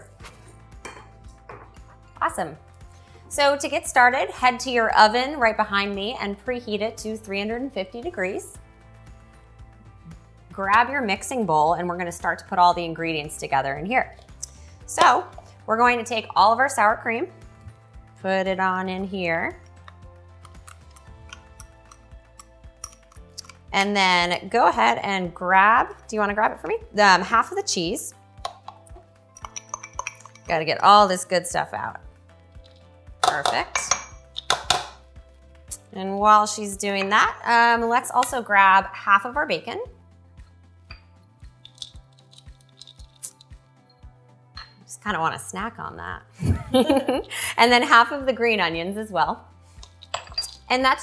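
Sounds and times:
soft background music: 0:00.0 - 0:51.0.

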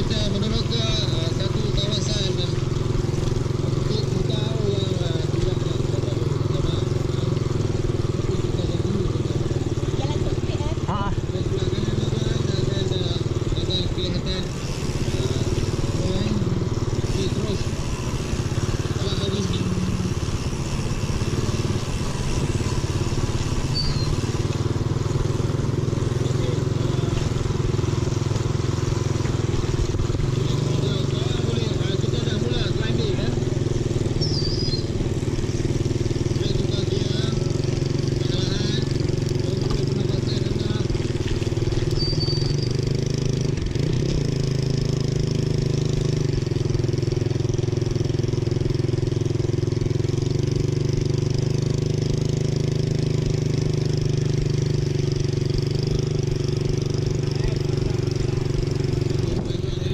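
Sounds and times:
small motorcycle engine running: 0:00.0 - 0:59.9.

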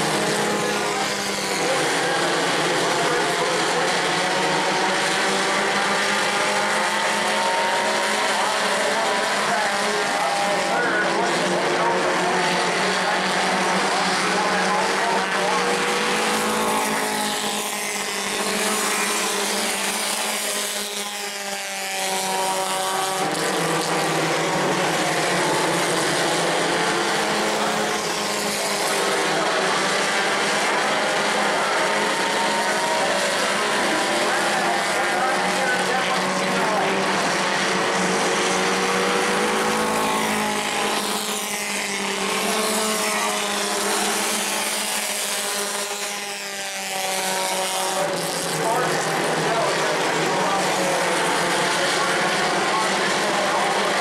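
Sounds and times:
racing car engines: 0:00.0 - 0:54.0.

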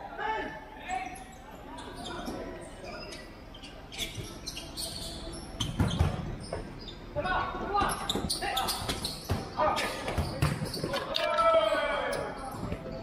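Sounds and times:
ball kicked and bouncing: 0:10.1 - 0:11.1.

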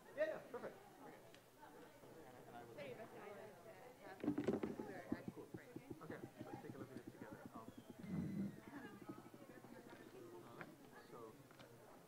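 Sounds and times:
indistinct talk of people: 0:00.0 - 0:12.0
rapid light knocks or clicks: 0:04.2 - 0:10.2.

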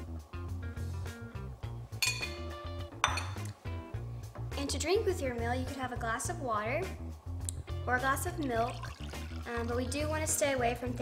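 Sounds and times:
background music with steady beat: 0:00.0 - 0:11.0
glass tableware clinking: 0:02.0 - 0:03.5.

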